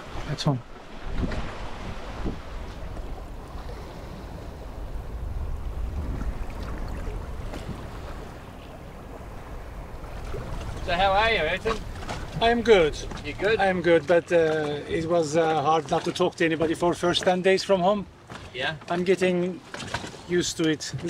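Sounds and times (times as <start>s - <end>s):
wind buffeting microphone: 0.0s - 15.3s
rush of open sea: 0.0s - 21.0s.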